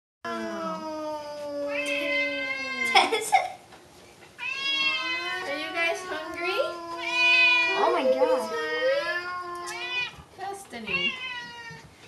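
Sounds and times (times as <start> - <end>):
cats meowing: 0.3 - 3.1, 4.4 - 12.0.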